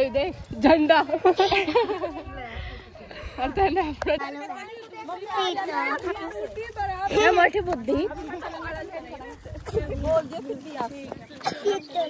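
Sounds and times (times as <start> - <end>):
women chattering: 0.0 - 12.0.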